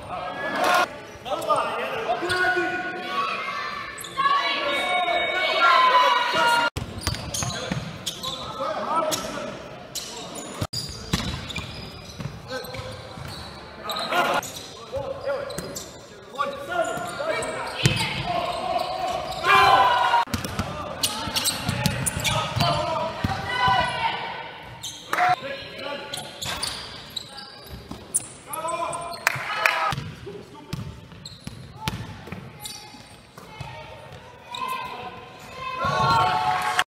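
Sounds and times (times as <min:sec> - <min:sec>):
players calling out: 0:16.3 - 0:26.8
basketball bouncing on wooden court: 0:17.8 - 0:18.3, 0:21.3 - 0:23.9, 0:30.7 - 0:32.4.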